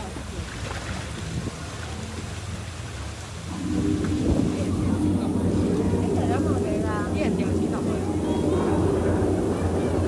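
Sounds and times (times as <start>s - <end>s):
water rushing and churning: 0.0s - 10.0s
deep loud rumble: 3.3s - 10.0s.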